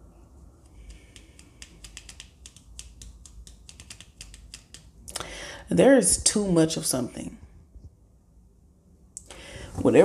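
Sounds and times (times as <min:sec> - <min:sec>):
light irregular clicks: 0:00.6 - 0:05.3.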